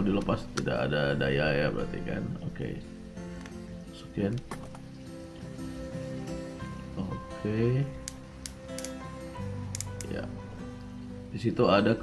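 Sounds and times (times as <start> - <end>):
background music: 0.0 - 12.0
drill collar clicking: 8.0 - 9.0.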